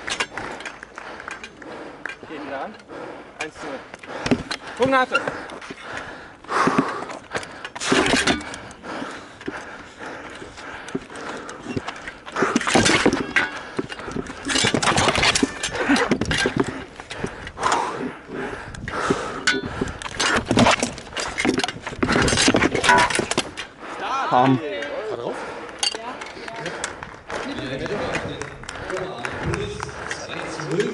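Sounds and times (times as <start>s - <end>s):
voices: 23.8s - 30.9s.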